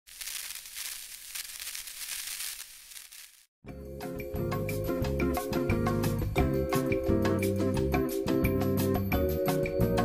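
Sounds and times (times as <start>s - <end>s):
high hissing with crackle: 0.1s - 3.5s.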